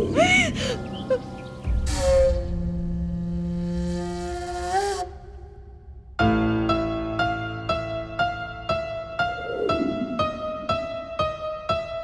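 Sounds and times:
low drone: 9.2 - 11.4.

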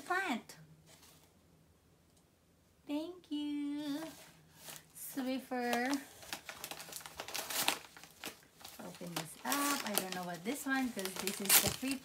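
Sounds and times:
paper crinkling and rustling: 4.0 - 12.0.

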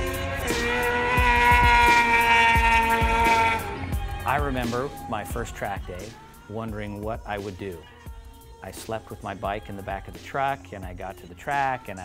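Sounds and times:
motorcycle engine at high revs: 0.0 - 4.0
background music with a beat: 0.0 - 12.0.

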